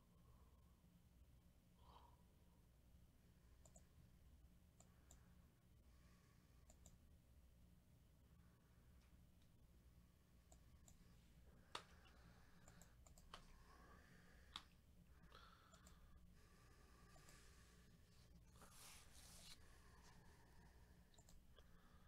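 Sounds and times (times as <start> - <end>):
faint steady low hum: 0.0 - 22.0
faint clicks: 3.6 - 3.9, 4.8 - 5.2, 6.6 - 7.0, 10.5 - 11.0, 11.6 - 13.6, 14.5 - 14.8, 15.4 - 16.1, 17.1 - 17.5, 21.1 - 21.8.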